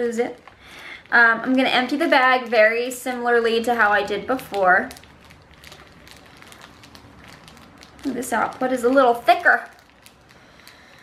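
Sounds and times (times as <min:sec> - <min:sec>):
plastic pouch crinkling: 0:00.0 - 0:11.0.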